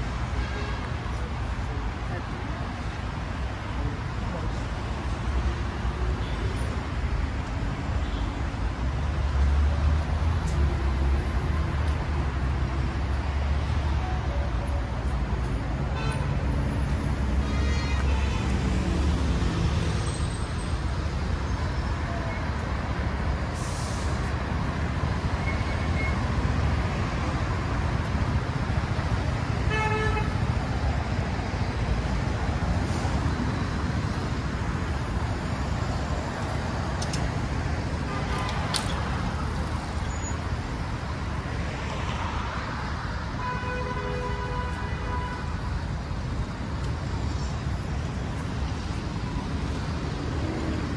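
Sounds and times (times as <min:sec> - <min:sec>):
cars passing: 0:00.0 - 0:50.9.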